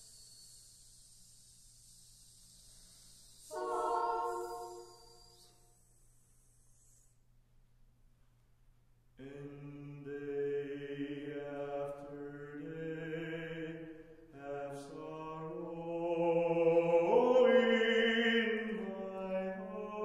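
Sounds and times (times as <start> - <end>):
a cappella choir singing chords: 0.0 - 5.6, 9.2 - 20.0.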